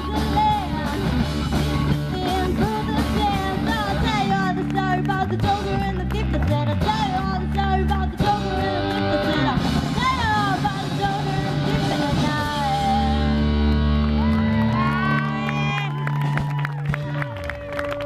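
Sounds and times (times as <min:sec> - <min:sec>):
person singing: 0:00.0 - 0:13.6
bass guitar: 0:00.0 - 0:18.0
drums: 0:00.0 - 0:18.0
electric guitar: 0:00.0 - 0:18.0.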